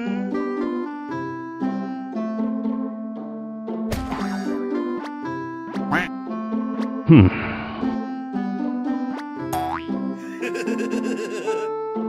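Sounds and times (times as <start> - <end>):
light comic background music: 0.0 - 12.0
rising cartoon boing effect: 9.6 - 9.9.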